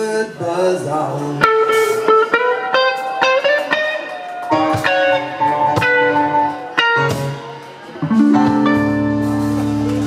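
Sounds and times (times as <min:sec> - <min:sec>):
live band playing: 0:00.0 - 0:10.0
electric guitar single notes: 0:01.4 - 0:10.0.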